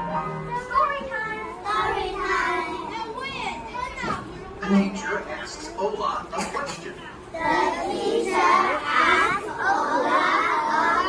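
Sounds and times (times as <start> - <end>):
children talking and reading aloud: 0.0 - 11.0.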